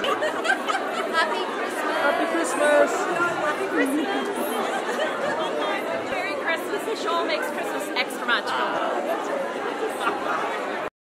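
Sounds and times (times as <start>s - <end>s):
crowd babble: 0.0s - 10.9s.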